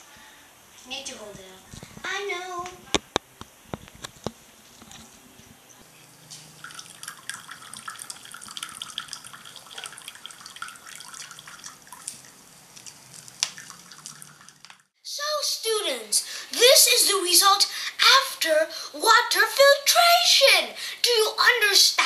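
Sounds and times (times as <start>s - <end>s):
water trickling and dripping into cup: 6.2s - 14.9s.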